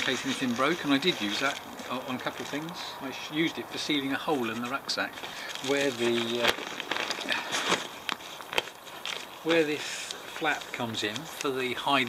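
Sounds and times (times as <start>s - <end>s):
backpack fabric rustling: 0.0s - 2.8s, 4.4s - 12.0s.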